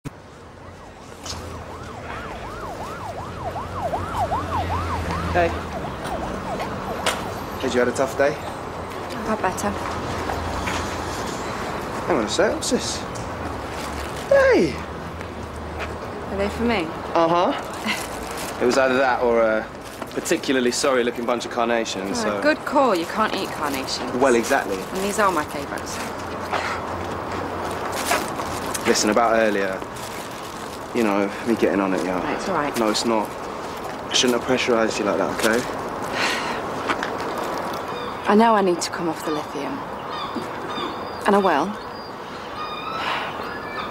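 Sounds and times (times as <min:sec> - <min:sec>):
outdoor background noise: 0:00.0 - 0:43.9
ambulance siren yelping: 0:00.6 - 0:07.6.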